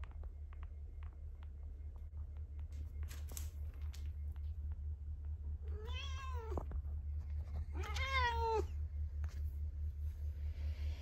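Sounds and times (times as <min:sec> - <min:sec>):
steady low hum: 0:00.0 - 0:11.0
cat meowing: 0:05.7 - 0:06.6, 0:07.7 - 0:08.7.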